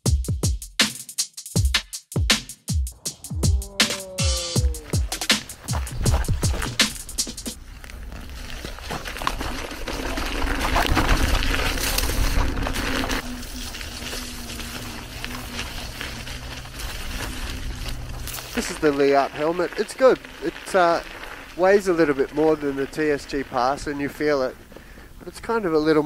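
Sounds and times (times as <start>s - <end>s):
drum and bass beat: 0.0s - 7.6s
tyre rolling over dirt: 3.0s - 26.0s.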